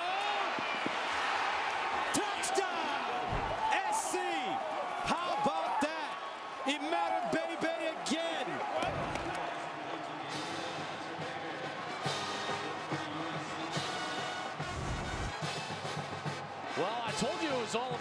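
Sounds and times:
crowd noise: 0:00.0 - 0:18.0.

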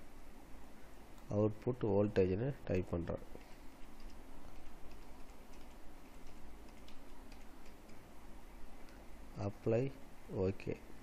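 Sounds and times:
low hum and hiss: 0:00.0 - 0:11.0
computer keys clicking: 0:03.4 - 0:08.0.

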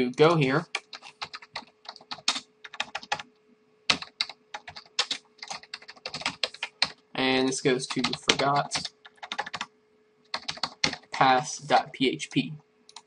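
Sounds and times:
typing on computer keyboard: 0:00.7 - 0:03.3, 0:03.9 - 0:07.0, 0:07.9 - 0:09.7, 0:10.3 - 0:11.2.

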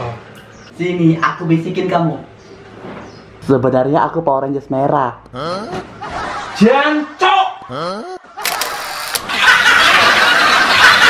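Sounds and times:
loud laughter: 0:05.6 - 0:11.0.

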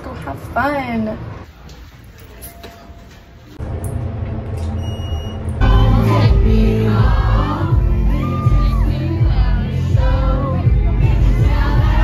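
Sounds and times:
music with heavy bass beat: 0:05.6 - 0:12.0
person singing: 0:05.6 - 0:12.0.

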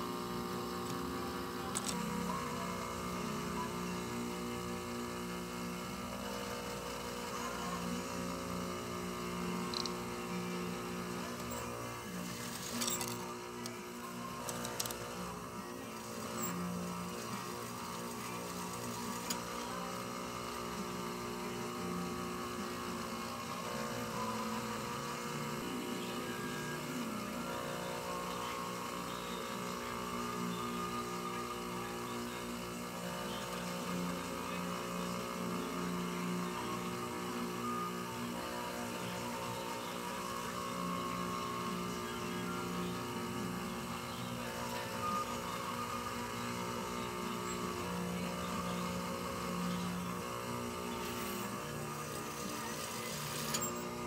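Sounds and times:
sewing machine motor humming: 0:00.0 - 0:54.0.

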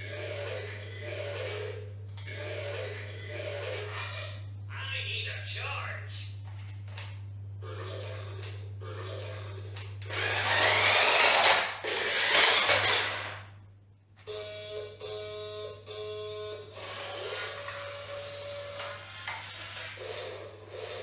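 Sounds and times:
toy electric motor whirring: 0:09.2 - 0:13.4, 0:16.8 - 0:20.4.

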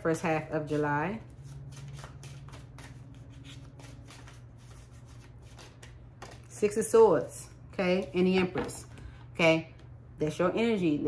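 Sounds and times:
cards being shuffled: 0:01.4 - 0:06.5.

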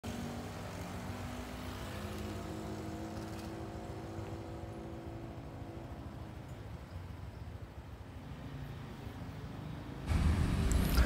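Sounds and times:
vehicle engine running: 0:10.1 - 0:11.0.

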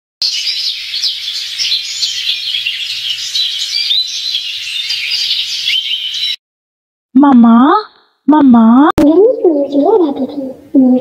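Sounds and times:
small birds chirping: 0:00.2 - 0:06.4, 0:09.0 - 0:11.0.

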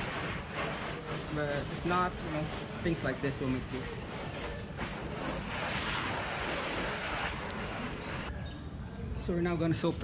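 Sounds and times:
hose nozzle spraying water: 0:00.0 - 0:08.3.

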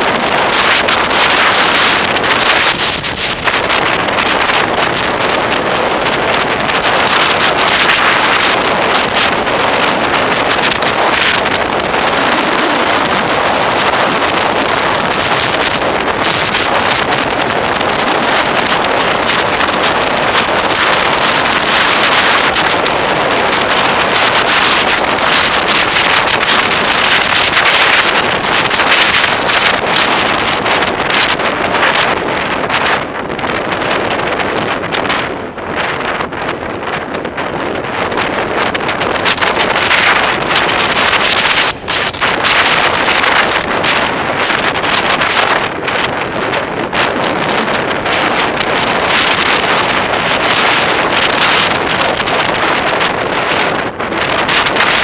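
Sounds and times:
tyre and road noise: 0:00.0 - 0:55.0
wind buffeting microphone: 0:00.0 - 0:55.0.

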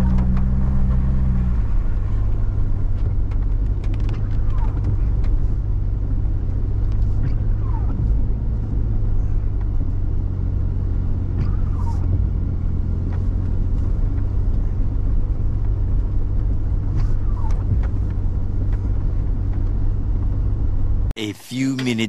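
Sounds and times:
vehicle engine and tyres rumbling: 0:00.0 - 0:21.2
windshield wiper squeaks: 0:07.0 - 0:08.2, 0:11.4 - 0:12.2.

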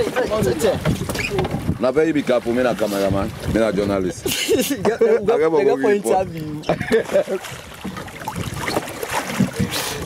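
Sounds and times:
water around canoe: 0:00.0 - 0:10.0
wind on microphone: 0:00.0 - 0:10.0.

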